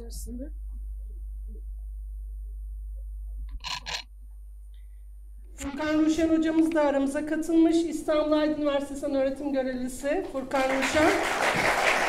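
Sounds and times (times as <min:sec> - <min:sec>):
sound system electrical hum: 0:00.0 - 0:12.0
microphone rustling: 0:05.5 - 0:07.3.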